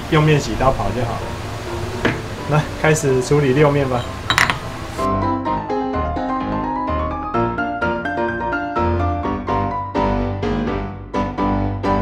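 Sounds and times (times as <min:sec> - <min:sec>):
piano music: 0:00.0 - 0:12.0.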